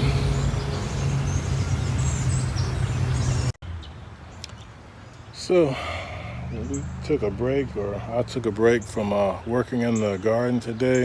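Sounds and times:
low outdoor hum: 0:00.0 - 0:03.5
birds chirping: 0:00.0 - 0:11.0.

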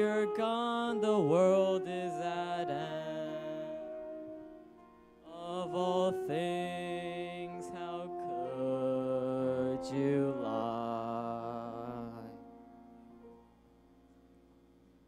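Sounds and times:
person singing with vibrato: 0:00.0 - 0:13.1
held accompaniment chords: 0:00.0 - 0:15.0.

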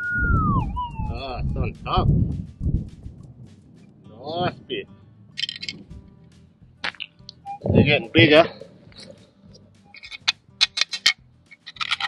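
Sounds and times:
low handling or wind rumble: 0:00.0 - 0:06.8, 0:07.4 - 0:09.9.

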